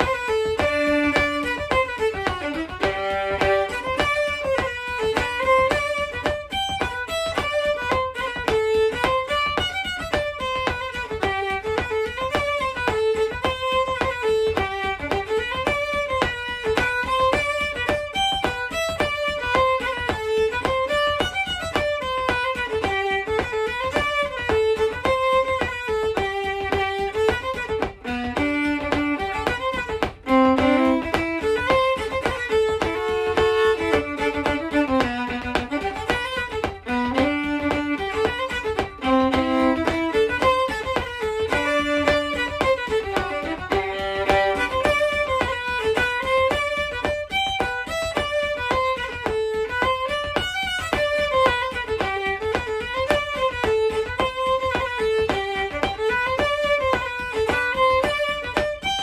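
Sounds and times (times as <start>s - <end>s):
solo fiddle playing lively tune: 0.0s - 59.0s.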